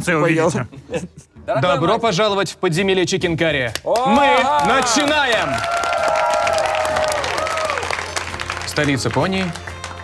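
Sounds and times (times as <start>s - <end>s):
people clapping: 3.6s - 10.0s.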